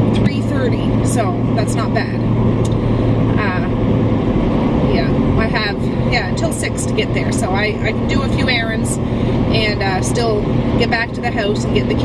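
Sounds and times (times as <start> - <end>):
car engine rumble: 0.0 - 12.0
tyres on road: 0.0 - 12.0.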